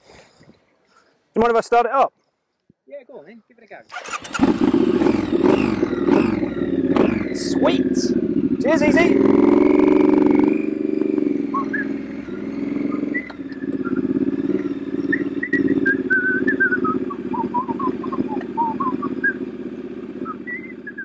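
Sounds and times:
motorcycle riding away: 0:03.9 - 0:21.0
high whistled chirps: 0:11.4 - 0:19.5, 0:20.2 - 0:21.0.

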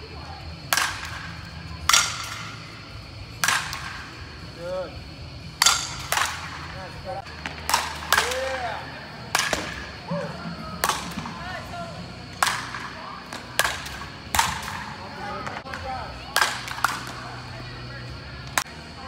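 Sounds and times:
bats striking balls: 0:00.5 - 0:17.6.

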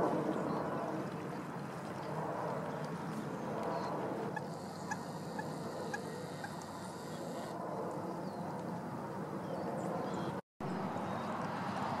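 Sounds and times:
steady outdoor background hiss: 0:00.0 - 0:12.0.

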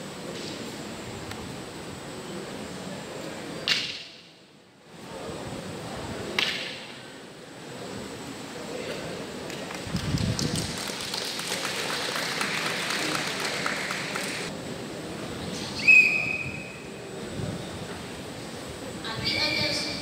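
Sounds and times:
audience applause: 0:09.6 - 0:14.5
referee's whistle blast: 0:15.8 - 0:16.8.

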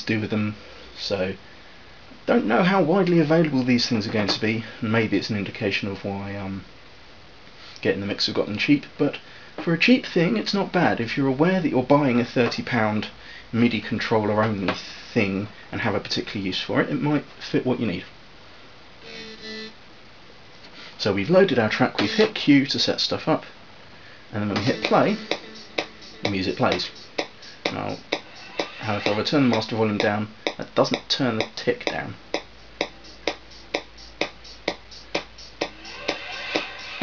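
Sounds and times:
short musical notes from speaker: 0:22.0 - 0:22.4, 0:24.5 - 0:30.1.

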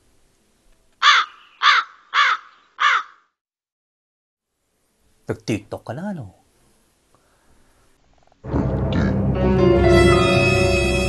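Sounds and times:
crow cawing: 0:01.0 - 0:03.3.

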